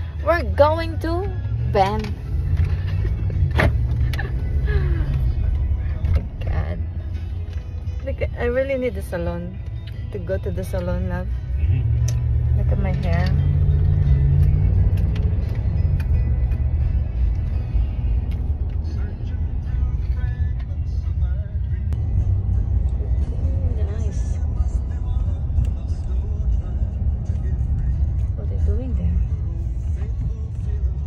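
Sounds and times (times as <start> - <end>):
music: 0.0 - 31.0
road and engine rumble: 0.0 - 31.0.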